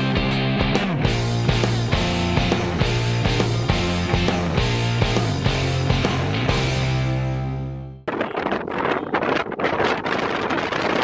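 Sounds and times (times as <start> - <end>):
wind buffeting microphone: 8.0 - 11.0.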